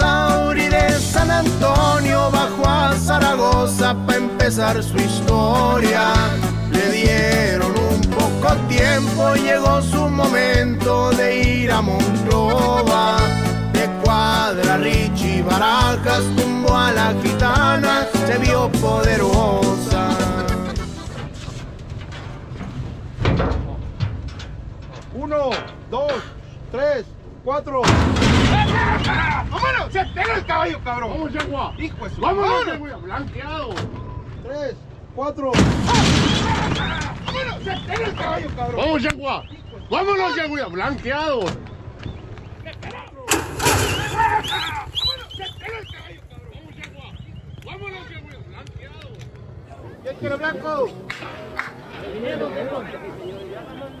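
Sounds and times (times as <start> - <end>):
background music: 0.0 - 21.1
heavy bang of starting gate: 27.8 - 29.5, 43.3 - 45.8
people shouting and whooping: 28.5 - 30.6, 43.3 - 46.1
horses galloping on dirt: 41.7 - 50.4
loud burst of noise: 43.3 - 45.2
low thumping rumble: 43.3 - 50.8.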